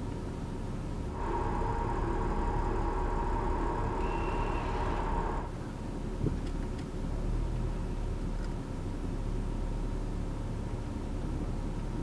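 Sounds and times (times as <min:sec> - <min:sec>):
car rolling rumble: 0:00.0 - 0:12.0
power steering motor whirring: 0:01.2 - 0:05.5.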